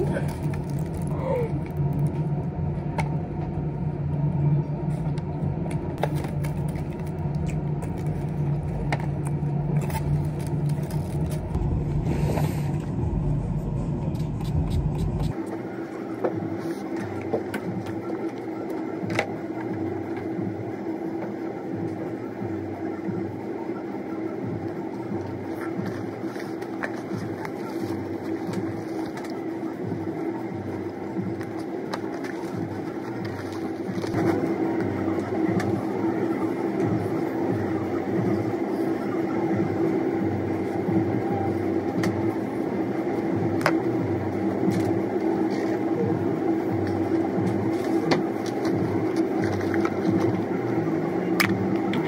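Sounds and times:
aluminium foil crinkling: 0.0 - 2.2
low rumble: 0.0 - 15.4
quiet hum with steady tone: 0.0 - 52.0.

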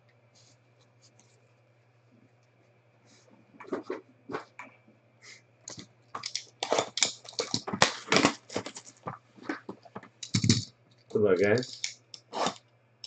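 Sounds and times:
shrink wrap tearing and crackling: 6.2 - 9.1.

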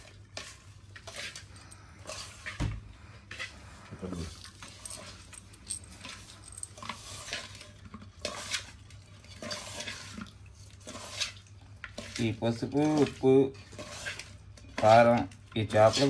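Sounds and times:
wet squelching and rustling: 0.0 - 16.0.

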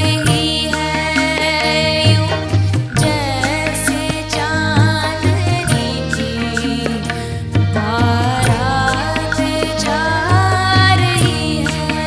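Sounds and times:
bass line: 0.0 - 12.0
drum strokes: 0.0 - 12.0
violin holding notes: 0.0 - 12.0.

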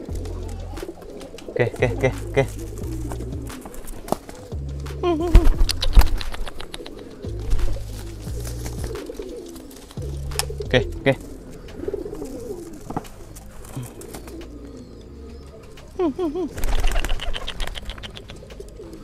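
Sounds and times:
pigeons cooing: 0.0 - 19.0.

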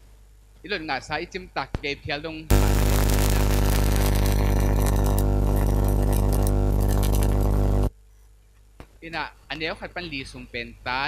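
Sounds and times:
loud buzzing low drone: 2.5 - 7.9.

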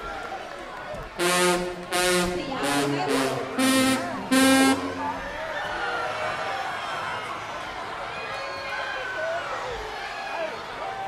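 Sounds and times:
crowd voices: 0.0 - 11.0
loud horn blasts: 1.2 - 5.3.

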